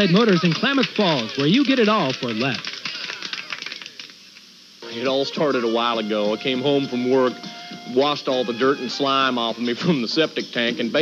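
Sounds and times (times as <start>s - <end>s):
man's voice: 4.8s - 11.0s.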